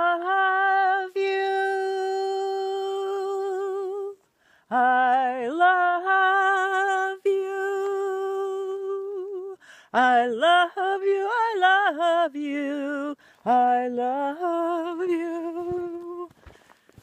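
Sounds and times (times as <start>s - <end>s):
woman singing long notes: 0.0s - 16.3s.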